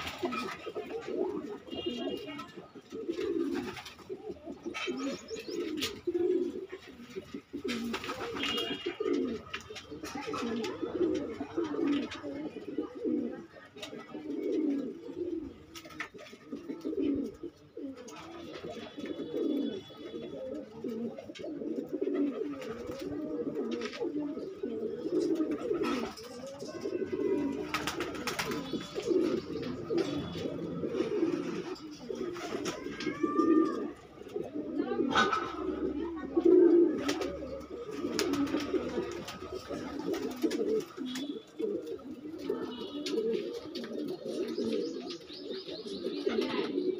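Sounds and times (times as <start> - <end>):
doves cooing: 0.0 - 46.9.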